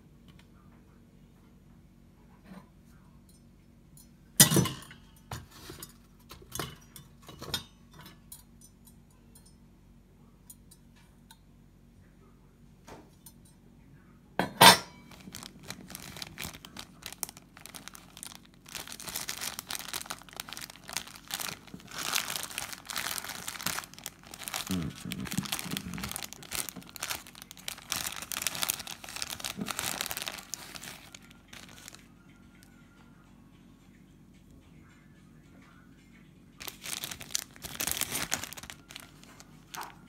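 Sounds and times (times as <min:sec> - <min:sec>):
plastic packet crinkling: 0:15.0 - 0:32.1, 0:36.6 - 0:40.0.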